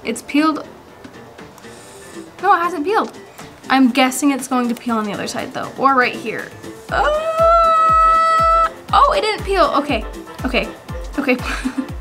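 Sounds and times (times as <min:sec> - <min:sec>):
background music with drum beat: 0:00.7 - 0:12.0
woman's high held vocal: 0:06.9 - 0:08.8.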